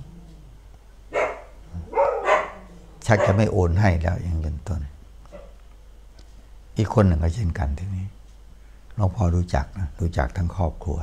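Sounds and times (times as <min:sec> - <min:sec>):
dog barking: 0:01.1 - 0:03.6, 0:05.3 - 0:05.6.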